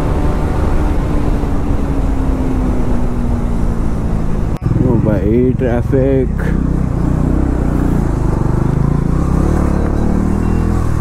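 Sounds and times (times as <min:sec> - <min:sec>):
motorcycle engine at low revs: 0:00.0 - 0:11.0.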